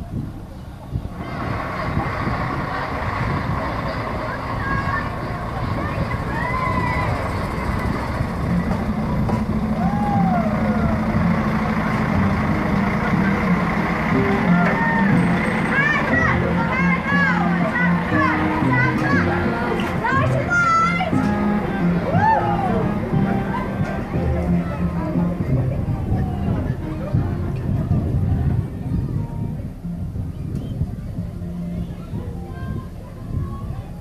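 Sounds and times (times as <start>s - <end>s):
lorry diesel engine rumbling: 0.0s - 34.0s
children and crowd calling out: 3.7s - 7.9s, 9.2s - 11.4s, 13.0s - 27.0s
music with held stepping notes: 4.2s - 34.0s.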